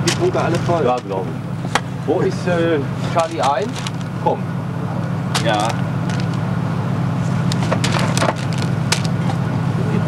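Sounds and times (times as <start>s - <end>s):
steady low hum: 0.0s - 10.0s
paper packaging crackling and rustling: 3.1s - 4.2s, 5.4s - 6.4s, 7.3s - 9.3s.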